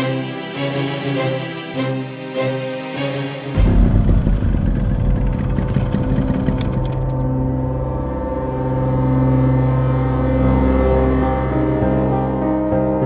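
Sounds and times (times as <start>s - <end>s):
background music chords: 0.0s - 13.0s
low vehicle engine rumble: 3.6s - 7.3s.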